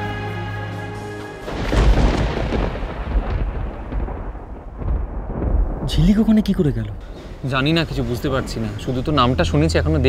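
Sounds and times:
thunder-like rumble: 1.5 - 8.5.

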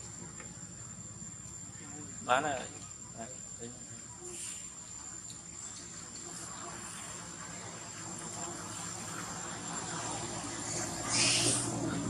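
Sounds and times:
background hiss: 0.0 - 12.0
flying insect buzzing: 4.2 - 12.0.

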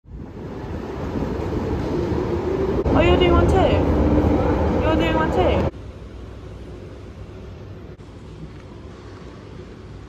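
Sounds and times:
escalator hall rushing noise: 0.0 - 10.0.

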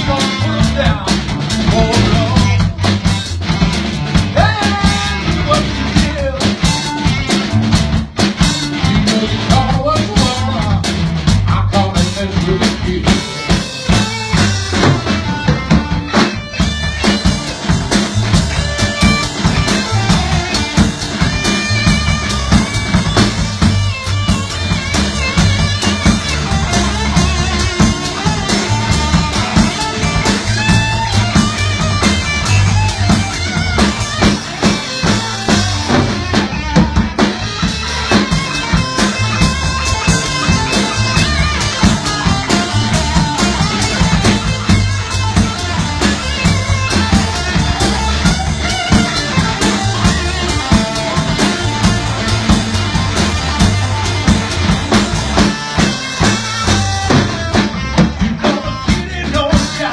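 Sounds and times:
drum kit steady beat: 0.0 - 59.9
live blues band instrumental: 0.0 - 59.9.

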